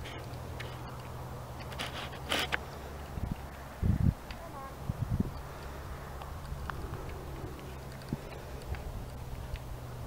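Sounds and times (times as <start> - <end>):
steady low rumble: 2.6 - 10.0
horse hooves in soft sand: 5.6 - 10.0.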